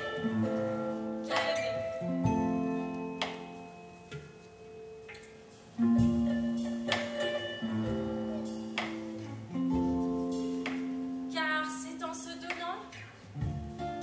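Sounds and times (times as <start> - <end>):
electric guitar single notes: 0.0 - 11.7
woman singing: 1.3 - 2.1.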